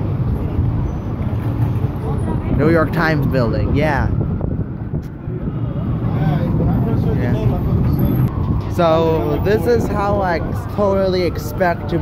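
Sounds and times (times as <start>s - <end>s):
faint voices of passers-by: 0.0s - 12.0s
traffic rumble: 0.0s - 12.0s.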